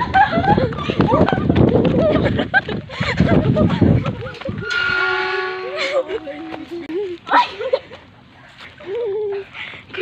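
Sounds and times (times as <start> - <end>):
voices talking: 4.2 - 10.0
horn held note: 4.6 - 6.8.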